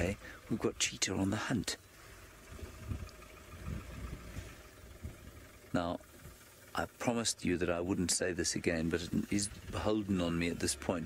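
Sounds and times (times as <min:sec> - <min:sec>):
engine idling: 0:00.0 - 0:11.0.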